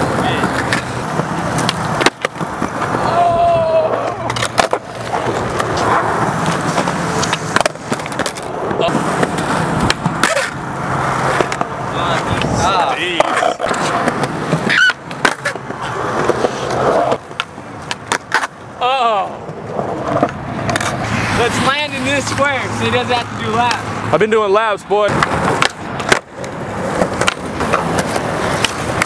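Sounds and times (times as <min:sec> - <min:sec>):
skateboards clacking: 0:00.0 - 0:24.0, 0:25.1 - 0:29.0
skateboard wheels rolling on concrete: 0:00.0 - 0:29.0.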